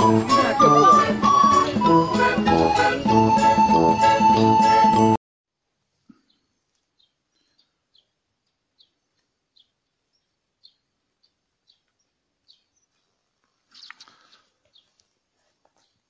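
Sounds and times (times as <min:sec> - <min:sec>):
small bird chirps: 0:06.2 - 0:13.1, 0:13.7 - 0:15.2.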